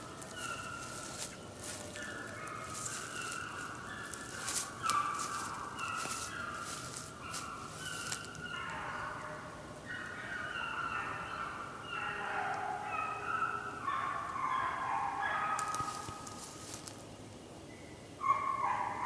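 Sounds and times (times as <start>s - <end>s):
close rustling crackles: 0.0s - 8.4s, 15.6s - 17.1s
hounds baying in distance: 0.0s - 16.9s, 18.2s - 19.0s.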